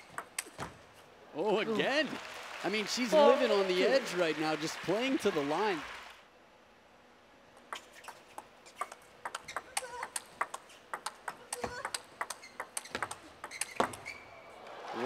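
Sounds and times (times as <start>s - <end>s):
table tennis ball clicking: 8.8s - 14.1s.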